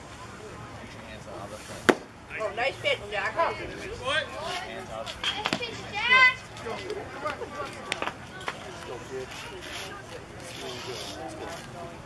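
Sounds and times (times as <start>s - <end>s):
sharp crack of baseball: 1.8s - 2.2s.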